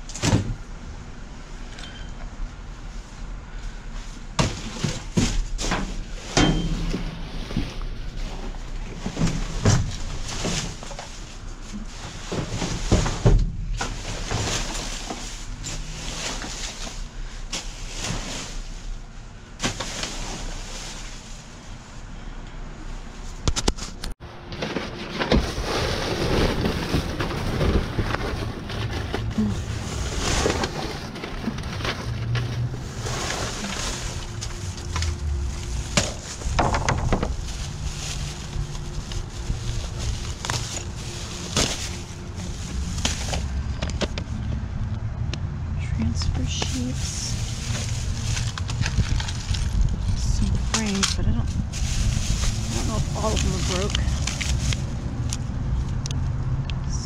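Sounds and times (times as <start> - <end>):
plastic and cardboard rustling: 3.0 - 19.0, 19.6 - 21.8, 23.2 - 44.6, 46.2 - 56.0
wind rumble on microphone: 42.3 - 57.0.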